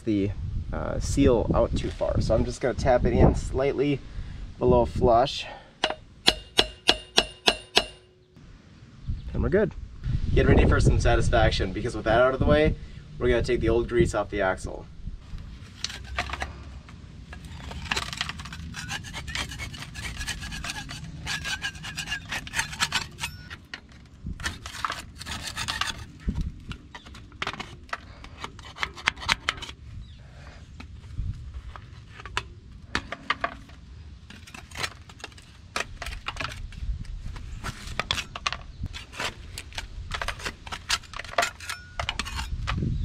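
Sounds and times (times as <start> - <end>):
metallic tapping on a tool: 5.8 - 8.2
metal scraper scraping grease off metal: 17.4 - 26.2, 37.9 - 42.6.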